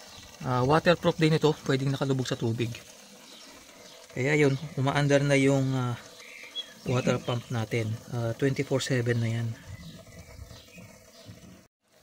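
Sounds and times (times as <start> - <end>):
water pump splashing into tank: 0.0 - 12.0.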